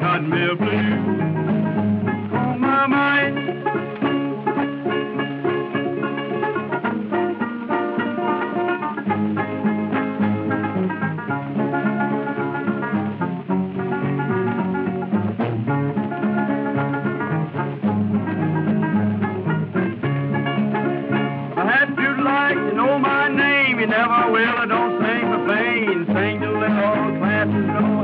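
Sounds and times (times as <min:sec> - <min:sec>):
plucked guitar and banjo: 0:00.0 - 0:28.0
string band instrumental: 0:00.0 - 0:28.0.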